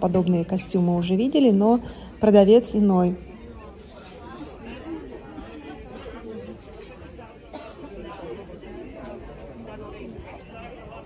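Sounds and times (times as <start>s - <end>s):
background chatter of people: 0.0s - 11.0s.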